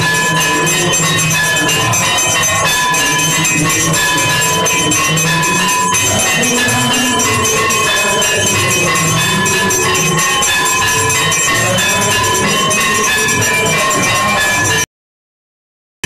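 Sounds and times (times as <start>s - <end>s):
bells and percussion clanging: 0.0s - 14.9s.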